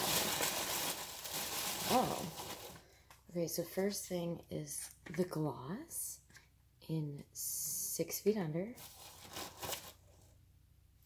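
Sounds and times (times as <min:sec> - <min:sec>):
packaging rustling and crinkling: 0:00.0 - 0:02.8, 0:08.8 - 0:10.0.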